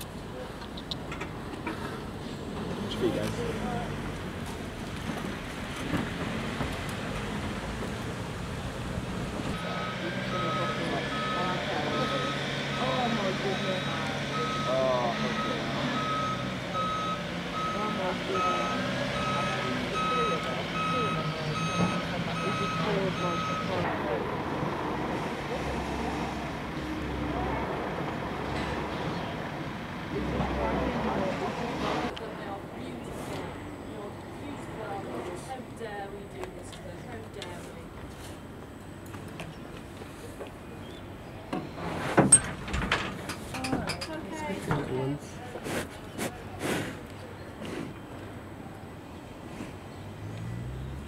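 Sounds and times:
engine running: 0:01.1 - 0:32.1
reversing alarm beeping: 0:09.6 - 0:23.9.

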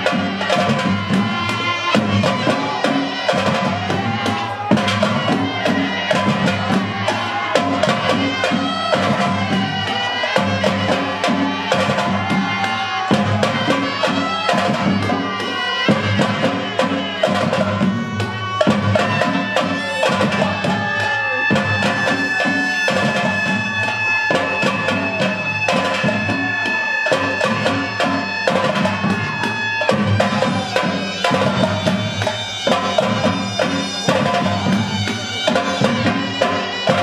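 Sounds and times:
reedy wind instrument: 0:00.0 - 0:37.0
steady drumming: 0:00.0 - 0:37.0.

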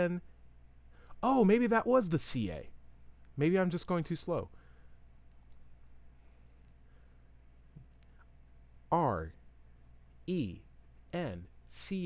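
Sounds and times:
low steady hum: 0:00.0 - 0:12.0
computer controls clicking: 0:05.3 - 0:05.7, 0:07.8 - 0:08.3.

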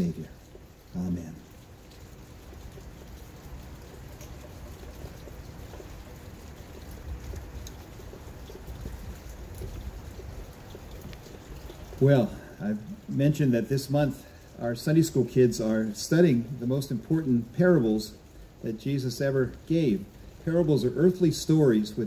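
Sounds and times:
faint ticks: 0:00.4 - 0:12.1
even hiss: 0:12.0 - 0:22.0.

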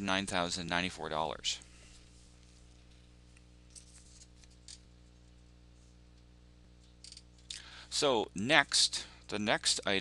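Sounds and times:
steady electrical hum: 0:00.0 - 0:10.0.

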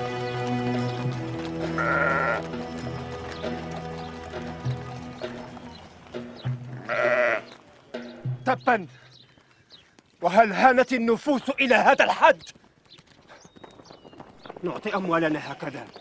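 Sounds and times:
background music: 0:00.0 - 0:09.0
sheep bleating: 0:01.6 - 0:02.6, 0:06.7 - 0:07.6.

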